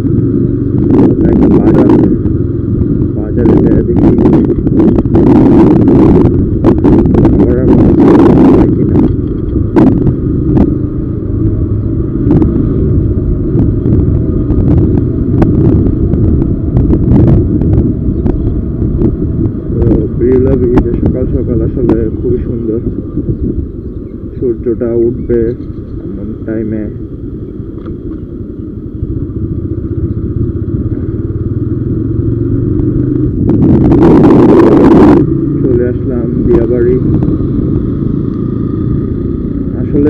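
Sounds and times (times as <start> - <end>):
motorcycle engine running: 0.0 - 40.0
wind rumble on microphone: 0.0 - 40.0.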